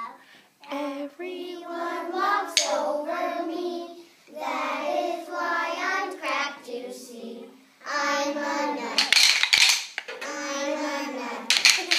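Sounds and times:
child singing: 0.0s - 9.2s, 10.2s - 11.9s.

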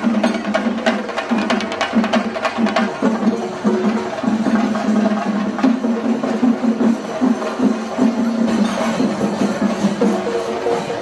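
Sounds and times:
fast dense drumming: 0.0s - 11.0s.

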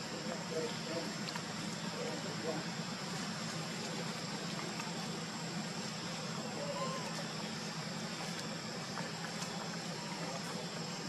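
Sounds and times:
even hiss: 0.0s - 11.0s
low hum: 0.0s - 11.0s.

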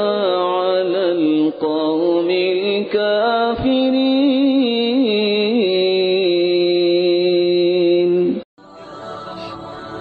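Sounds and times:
man reciting melodically: 0.0s - 8.5s.

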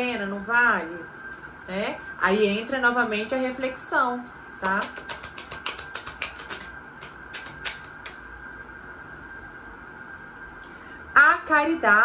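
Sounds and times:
faint steady hum: 0.0s - 12.0s
cards being shuffled: 4.6s - 8.2s.

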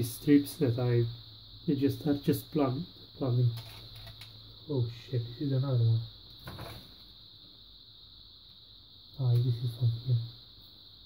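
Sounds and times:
steady high whine: 0.0s - 11.0s.

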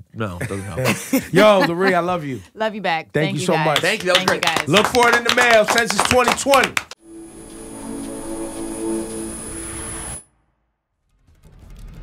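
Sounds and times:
thin high whine: 7.0s - 10.3s.

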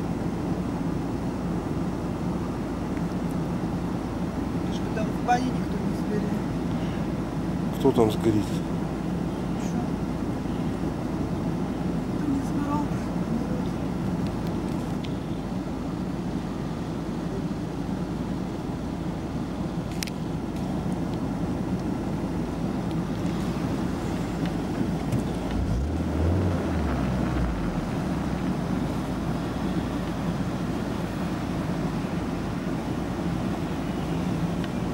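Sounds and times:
car engine idling: 0.0s - 34.9s.

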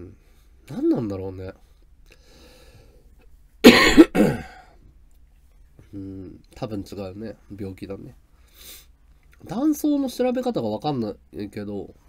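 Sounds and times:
man coughing: 3.6s - 4.7s.

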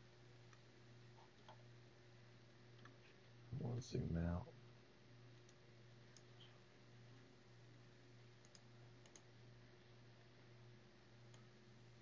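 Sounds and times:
low steady hum: 0.0s - 12.0s
computer mouse clicks: 5.4s - 6.5s, 8.4s - 9.3s, 11.3s - 11.5s.

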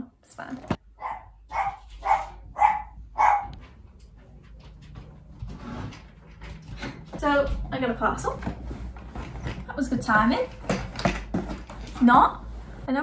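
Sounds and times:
dog barking: 1.0s - 3.6s.

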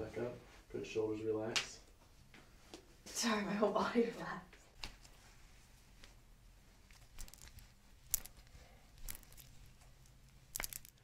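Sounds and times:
low room hum: 0.0s - 11.0s
hands rustling against clothing: 4.8s - 11.0s.

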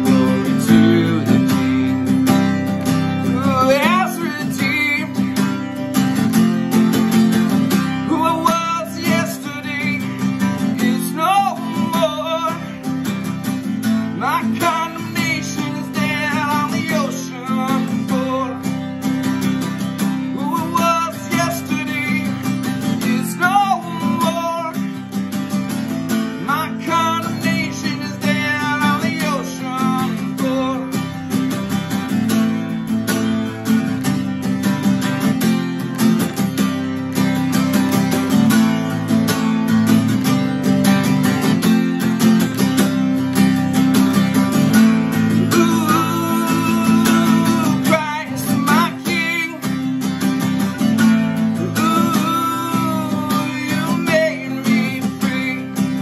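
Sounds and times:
man singing: 0.0s - 6.0s, 7.0s - 34.0s, 44.0s - 56.0s
acoustic guitar strumming: 0.0s - 56.0s.

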